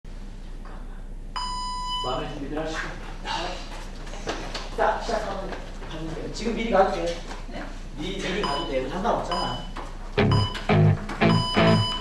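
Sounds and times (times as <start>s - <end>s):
high-pitched electronic beep: 10.3s - 12.0s.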